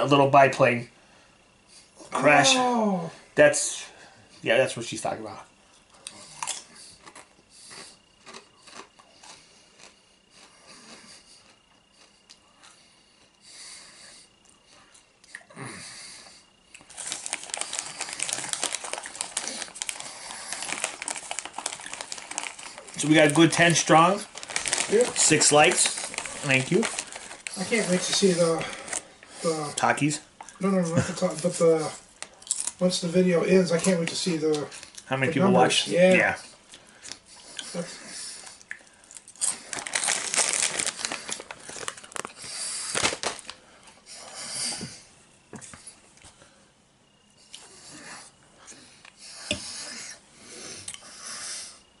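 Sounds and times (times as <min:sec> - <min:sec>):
chip bag crinkling: 0:16.8 - 0:29.1, 0:39.0 - 0:43.6.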